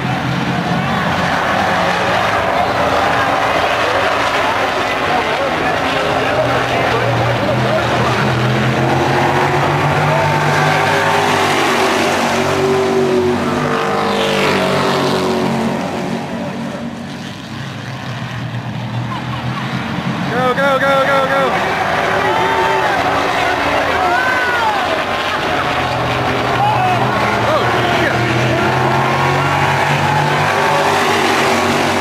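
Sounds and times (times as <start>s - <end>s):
racing car engines passing: 0.0s - 32.0s
person shouting: 26.5s - 27.1s.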